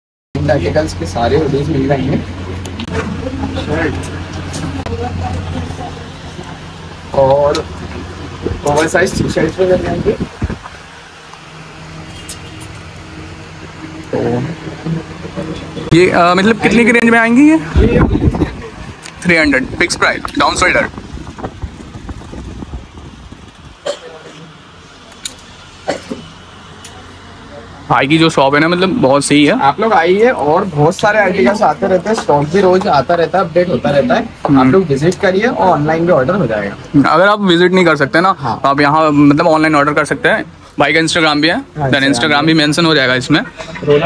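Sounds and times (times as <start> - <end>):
steady low hum: 0.4 - 44.0.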